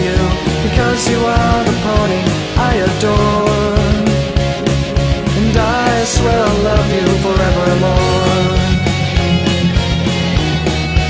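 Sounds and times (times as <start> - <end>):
pop-punk rock band: 0.0 - 11.0.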